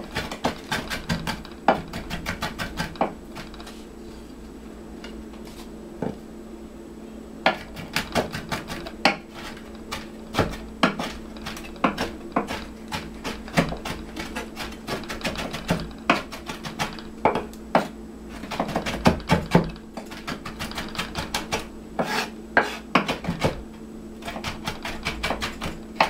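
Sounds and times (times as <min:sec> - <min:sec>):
knife chopping on cutting board: 0:00.0 - 0:03.8, 0:07.5 - 0:23.6, 0:24.2 - 0:26.0
steady low hum: 0:00.0 - 0:26.0.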